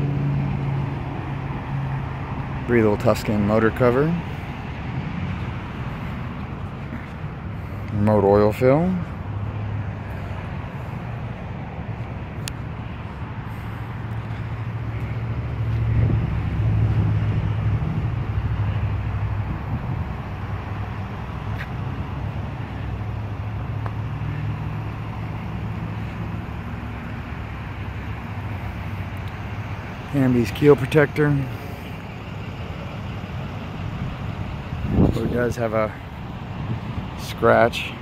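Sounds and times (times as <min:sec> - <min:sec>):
low hum of traffic: 0:00.0 - 0:38.0.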